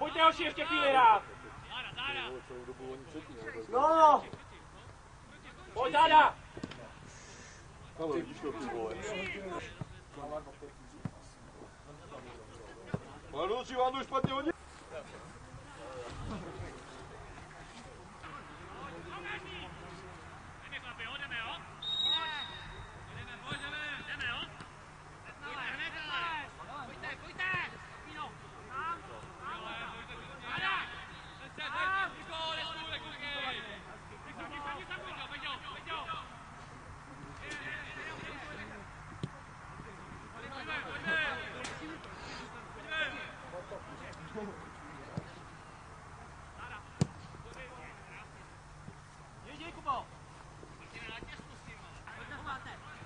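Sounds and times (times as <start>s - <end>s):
players shouting calls: 0.0s - 10.1s, 18.2s - 50.2s
distant players shouting: 20.6s - 36.4s
football being kicked: 47.0s - 47.2s.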